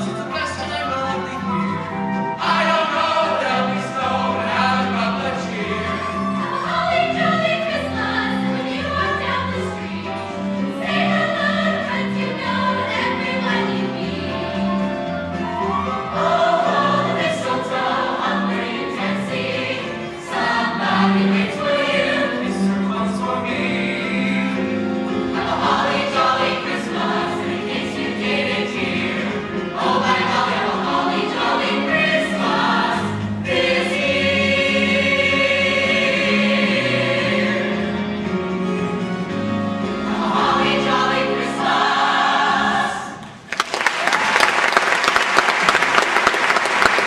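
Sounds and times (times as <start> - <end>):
mixed choir singing in harmony: 0.0 - 43.5.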